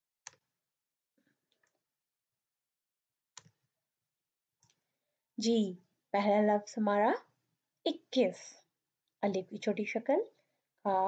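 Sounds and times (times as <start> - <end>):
computer mouse clicking: 0.2 - 0.5, 3.4 - 3.6.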